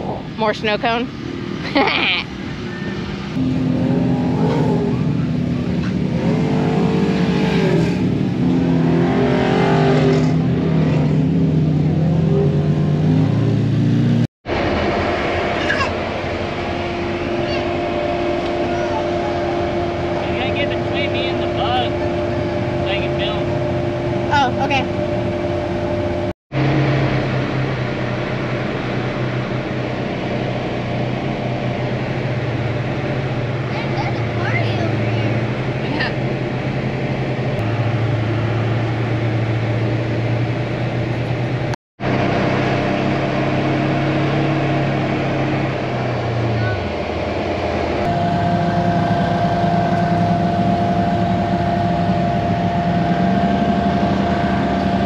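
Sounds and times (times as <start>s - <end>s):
engine drone: 0.0s - 55.0s.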